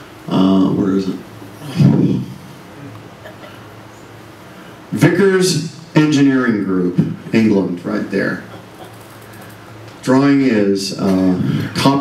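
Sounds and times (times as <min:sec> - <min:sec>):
low steady hum: 0:00.0 - 0:12.0
man speaking into a microphone: 0:00.3 - 0:02.4, 0:04.9 - 0:08.5, 0:10.0 - 0:12.0.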